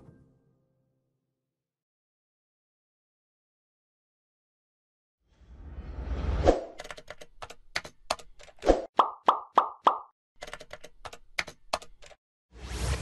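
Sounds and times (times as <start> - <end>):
computer keyboard typing: 6.8 - 8.6, 10.4 - 12.2.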